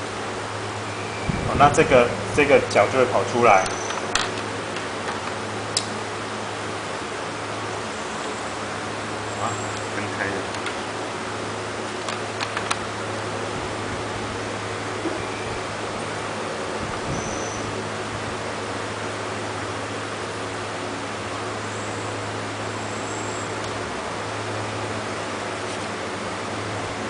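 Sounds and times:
low steady hum: 0:00.0 - 0:27.0.

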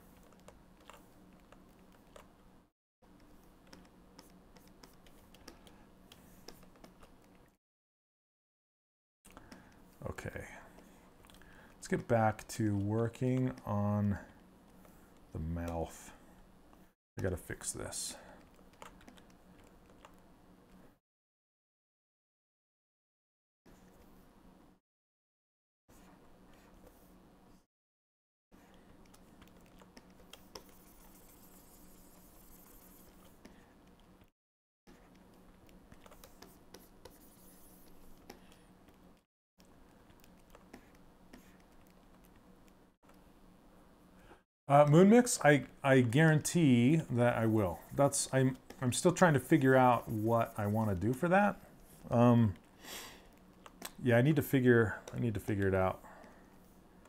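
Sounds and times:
low steady hum: 0:34.9 - 0:57.0.

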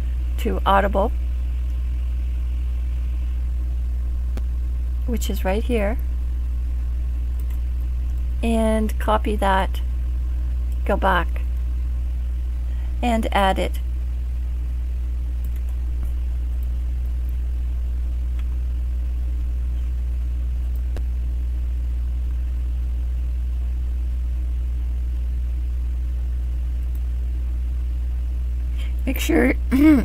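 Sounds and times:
low electrical hum: 0:00.0 - 0:30.0
faint clicks: 0:07.3 - 0:08.3, 0:15.4 - 0:17.4.

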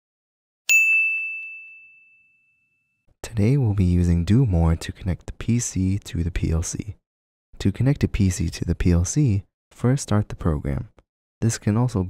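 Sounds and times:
bright ding chime: 0:00.7 - 0:02.7.

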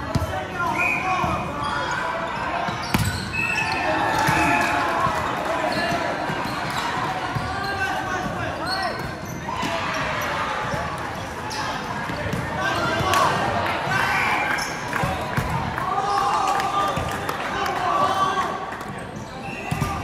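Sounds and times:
sneakers squeaking on floor: 0:00.0 - 0:13.1, 0:18.9 - 0:20.0
crowd calling out in hall: 0:00.0 - 0:20.0.

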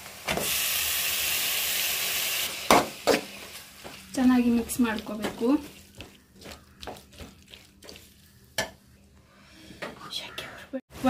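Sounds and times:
food sizzling in hot oil: 0:00.0 - 0:08.8.

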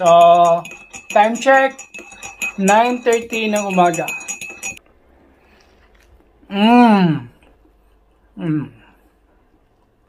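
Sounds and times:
teaspoon clinking in ceramic mug: 0:00.0 - 0:04.8.

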